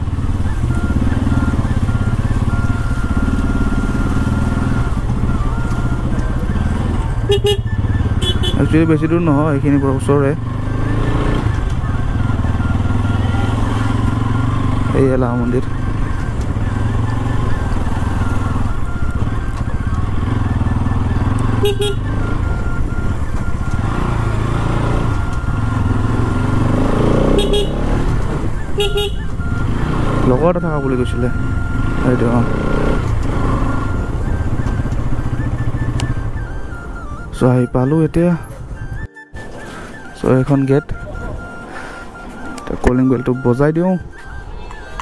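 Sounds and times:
motorcycle engine running: 0.0 - 45.0.

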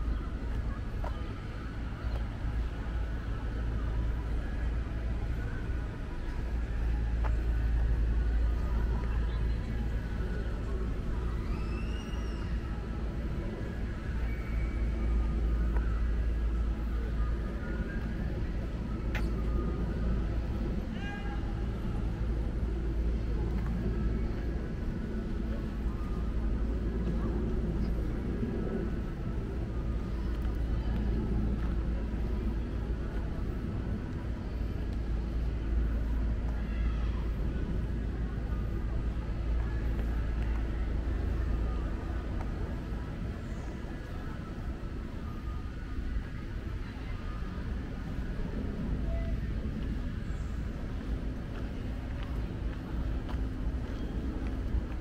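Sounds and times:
faint distant voices: 0.0 - 55.0
steady low city rumble: 0.0 - 55.0.

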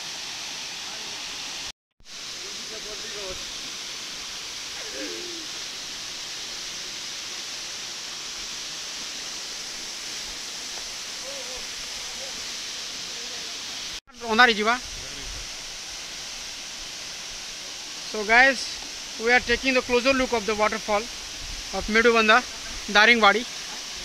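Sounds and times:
waterfall rushing into pool: 0.0 - 24.0.

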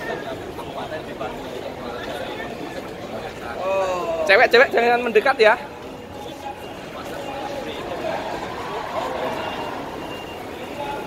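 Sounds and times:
passing traffic: 4.8 - 11.0
faint electronic beep: 5.8 - 7.8, 9.0 - 11.0.

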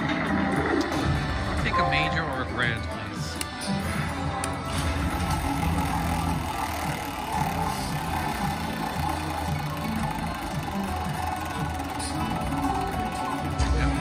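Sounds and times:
slot machine game music: 1.4 - 14.0.

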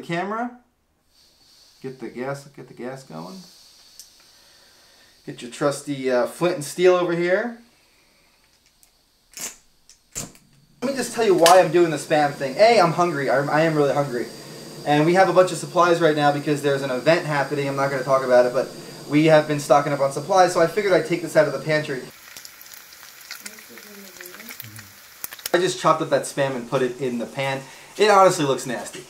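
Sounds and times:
crackling pops: 8.7 - 12.0, 22.1 - 25.7
meat sizzling in a pan: 10.8 - 29.0.

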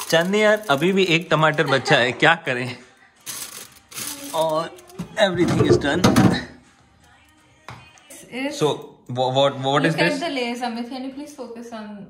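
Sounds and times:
plastic bag rustling: 0.0 - 2.1, 3.2 - 6.0.

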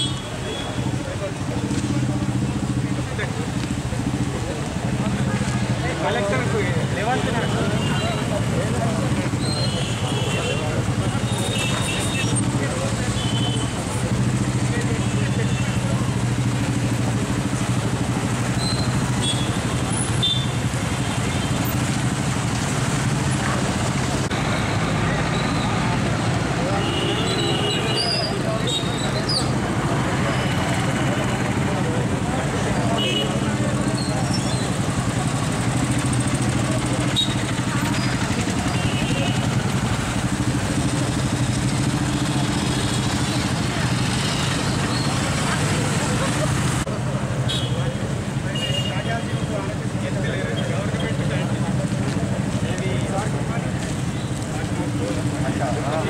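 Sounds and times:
crowd voices: 0.0 - 56.0
motorcycle engines running: 0.0 - 56.0
street noise: 0.0 - 56.0.

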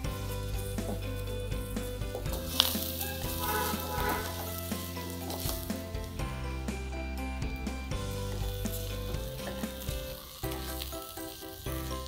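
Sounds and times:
rice sizzling in a pot: 0.0 - 12.0
soft background music: 0.0 - 12.0
spatula scraping metal pot: 2.2 - 5.6.

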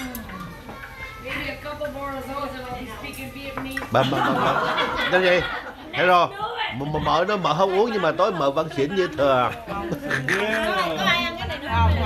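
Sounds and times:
background talk: 0.0 - 12.0.

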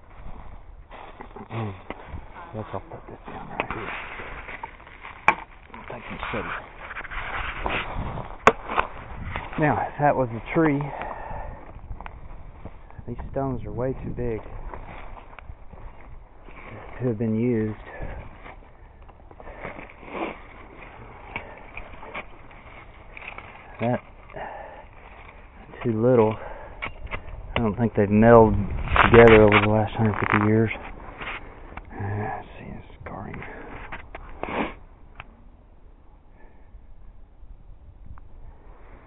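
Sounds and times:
twigs snapping: 6.8 - 9.0
dry leaves rustling: 18.4 - 25.8.

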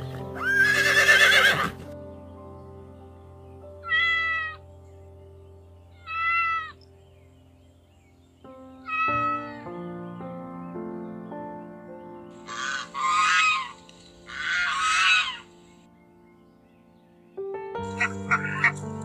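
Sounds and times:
background music: 0.0 - 19.0
pony whinnying: 0.4 - 1.8, 3.8 - 4.6, 6.0 - 6.8, 8.9 - 9.6, 12.5 - 15.4
cat meowing: 3.8 - 4.6, 6.0 - 6.8, 8.9 - 9.6.

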